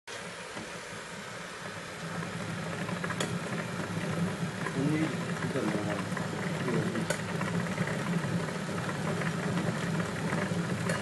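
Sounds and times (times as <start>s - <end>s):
low mechanical hum: 0.1s - 11.0s.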